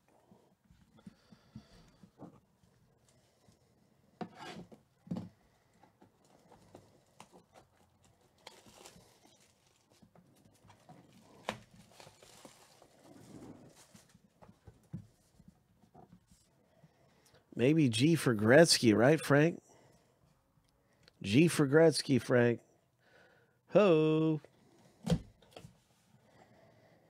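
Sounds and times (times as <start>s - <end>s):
plastic shrink wrap rustling: 7.1s - 14.4s.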